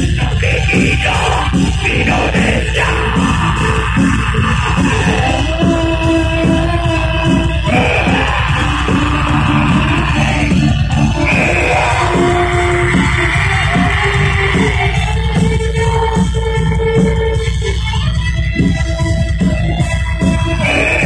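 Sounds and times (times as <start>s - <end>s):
person singing and yelling: 0.0s - 16.7s, 20.3s - 21.0s
bass and drums: 0.0s - 21.0s
distorted electric guitars: 0.0s - 21.0s.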